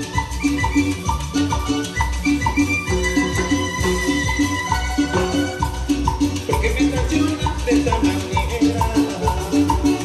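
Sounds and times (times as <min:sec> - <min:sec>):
latin dance band music: 0:00.0 - 0:10.0.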